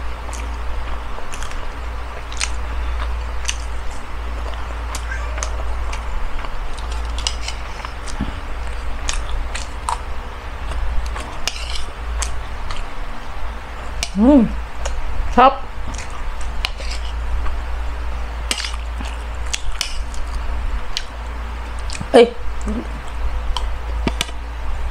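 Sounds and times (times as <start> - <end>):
steady low hum: 0.0 - 24.9
chewing: 0.2 - 12.9, 15.8 - 17.6, 18.4 - 24.4
fork scraping on a plate: 11.4 - 11.9, 16.6 - 17.2.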